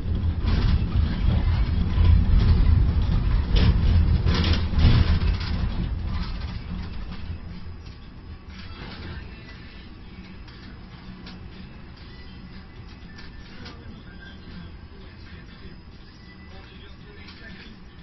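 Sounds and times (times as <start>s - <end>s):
metal clanks: 0.0s - 9.3s
crane machinery rumbling: 0.0s - 18.0s.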